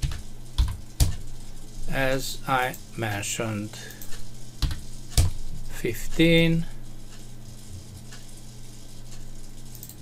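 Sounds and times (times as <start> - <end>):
computer keyboard keys struck: 0.0 - 1.2, 4.6 - 5.4.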